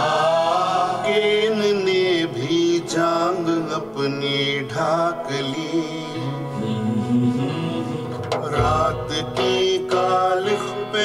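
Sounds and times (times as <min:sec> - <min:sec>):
men singing: 0:00.0 - 0:11.0.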